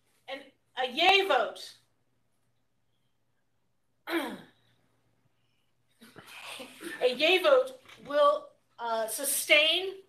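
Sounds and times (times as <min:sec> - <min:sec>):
person clearing throat: 0:04.0 - 0:04.6.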